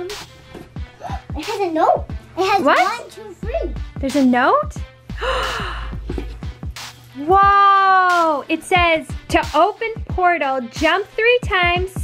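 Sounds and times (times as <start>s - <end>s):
background music: 0.0s - 12.0s
person gasping: 5.1s - 6.2s.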